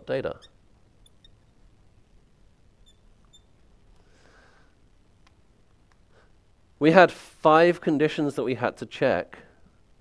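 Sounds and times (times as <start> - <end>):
marker squeaking on glass: 0.0 - 1.6, 2.8 - 3.6.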